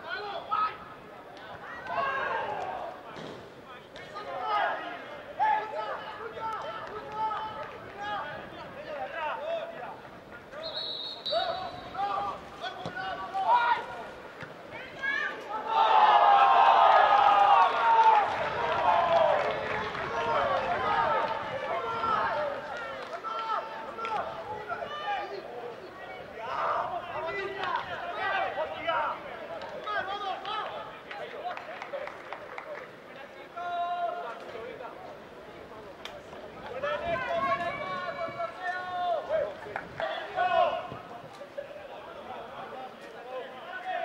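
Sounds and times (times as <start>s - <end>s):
people shouting and cheering: 0.0s - 3.2s, 4.0s - 32.1s, 36.6s - 44.0s.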